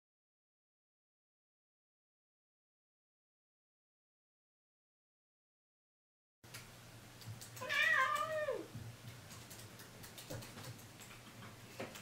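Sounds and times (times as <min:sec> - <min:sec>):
low room hum: 0:06.4 - 0:12.0
cat meowing: 0:07.6 - 0:08.7
laptop keys clicking: 0:09.2 - 0:11.3.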